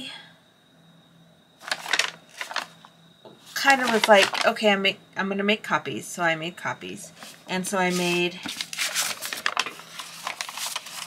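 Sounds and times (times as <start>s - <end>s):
paper sheets rustling: 1.6s - 2.8s, 3.4s - 4.6s, 7.2s - 11.0s.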